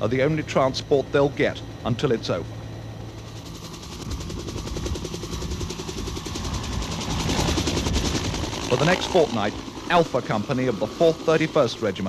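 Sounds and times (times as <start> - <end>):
helicopter rotor beating: 0.0 - 12.0.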